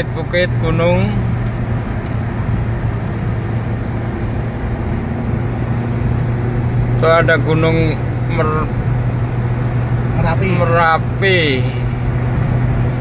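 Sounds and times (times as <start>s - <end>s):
car cabin drone: 0.0s - 13.0s.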